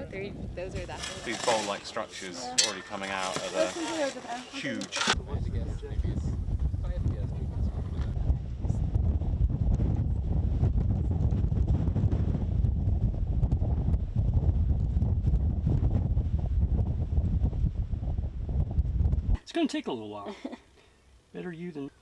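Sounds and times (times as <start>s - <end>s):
wind buffeting microphone: 0.0s - 1.3s, 5.1s - 19.4s.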